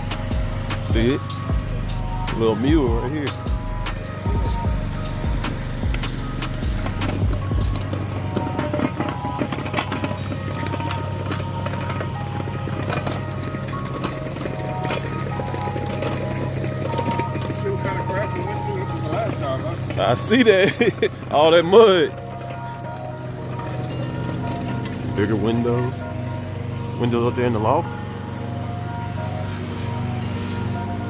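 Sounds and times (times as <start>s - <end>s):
background music: 0.0s - 31.0s
low engine drone: 0.0s - 31.0s.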